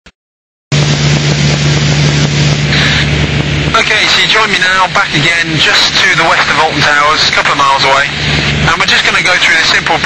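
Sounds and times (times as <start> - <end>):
aircraft engine and propeller droning: 0.7 - 10.0
airflow noise: 0.7 - 10.0.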